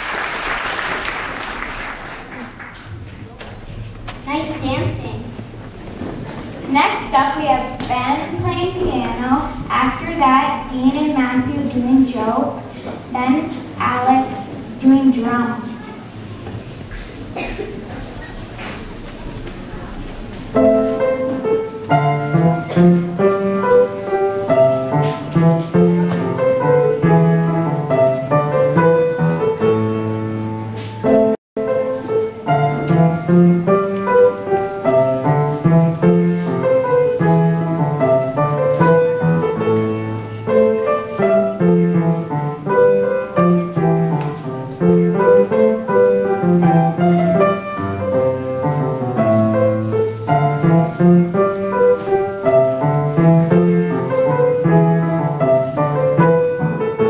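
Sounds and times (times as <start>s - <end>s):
upright piano playing: 6.6s - 16.3s, 18.8s - 57.0s.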